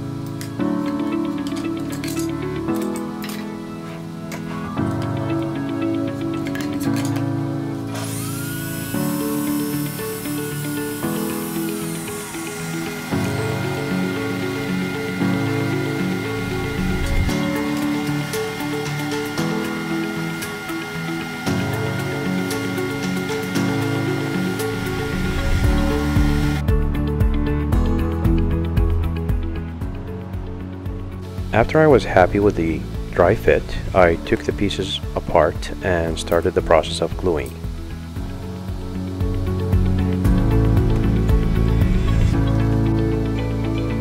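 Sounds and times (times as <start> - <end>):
background music: 0.0 - 44.0
table saw cutting: 7.8 - 26.7.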